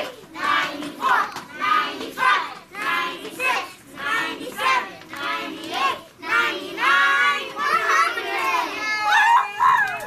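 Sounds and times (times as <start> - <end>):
young children singing: 0.0 - 9.1.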